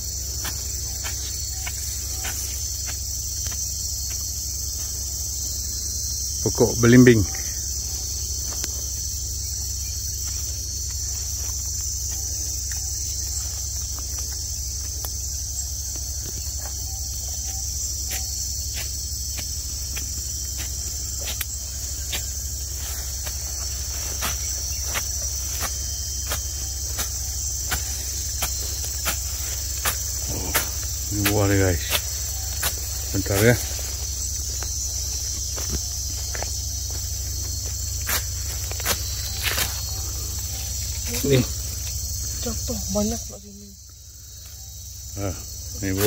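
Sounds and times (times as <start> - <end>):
insects chirring: 0.0 - 46.0.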